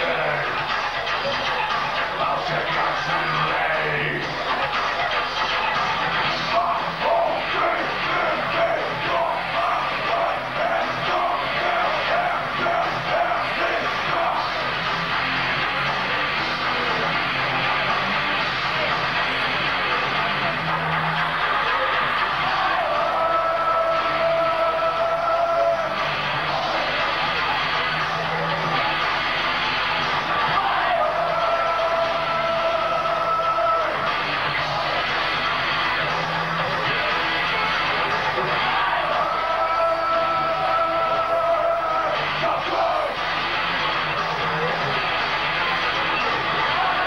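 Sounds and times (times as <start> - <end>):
live metal band playing: 0.0 - 47.0.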